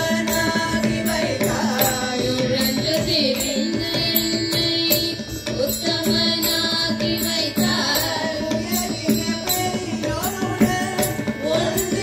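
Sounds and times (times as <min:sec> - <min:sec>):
group singing devotional song: 0:00.0 - 0:12.0.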